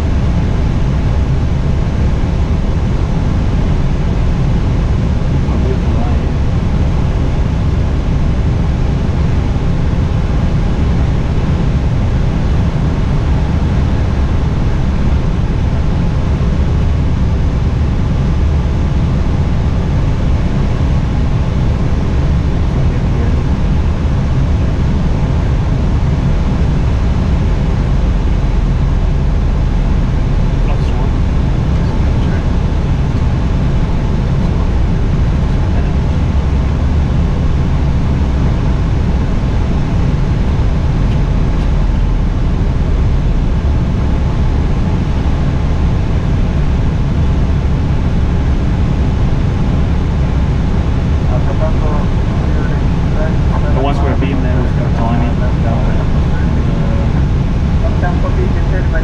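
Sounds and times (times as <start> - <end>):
airliner cockpit rumble: 0.0 - 59.0.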